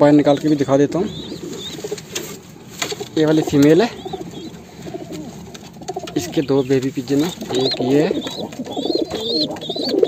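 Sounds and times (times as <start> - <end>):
pigeons cooing: 0.1 - 10.0.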